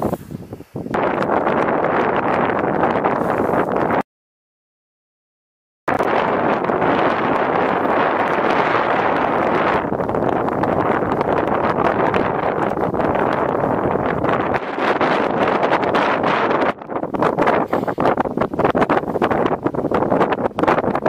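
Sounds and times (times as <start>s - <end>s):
wind blowing across microphone: 0.0s - 4.0s, 5.9s - 21.0s.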